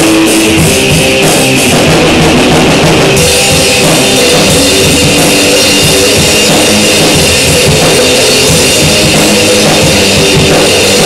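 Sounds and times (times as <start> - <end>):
rock song with drums: 0.0 - 11.0.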